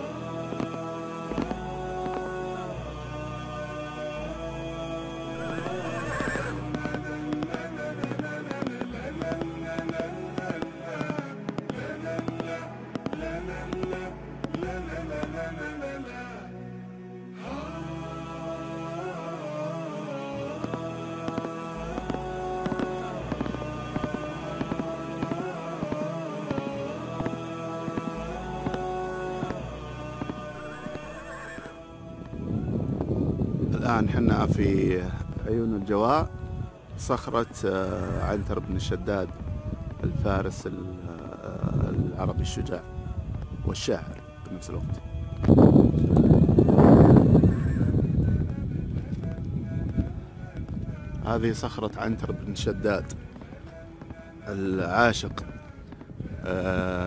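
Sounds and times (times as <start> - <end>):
music with sustained tones: 0.0 - 57.0
horse whinnying: 5.4 - 6.6, 30.6 - 31.8
rough rumble: 20.6 - 57.0.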